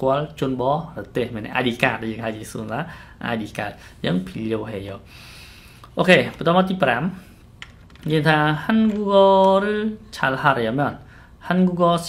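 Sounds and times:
man speaking: 0.0s - 5.1s, 5.9s - 7.3s, 8.0s - 12.0s.

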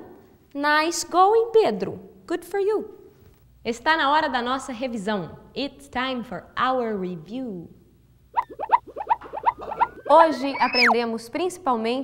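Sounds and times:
short rising chirps: 8.3s - 11.0s.

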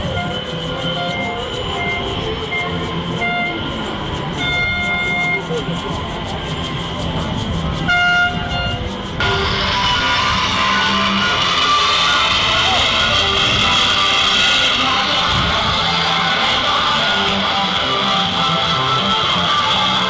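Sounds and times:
horn notes: 0.0s - 5.5s, 7.8s - 20.0s
music: 0.0s - 20.0s
voices: 0.0s - 20.0s
loud music: 9.2s - 20.0s.

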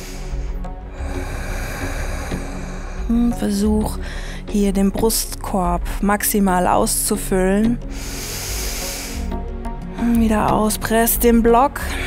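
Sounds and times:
deep in-breath hiss: 0.0s - 3.2s, 7.8s - 9.6s
soft background music: 0.0s - 12.0s.

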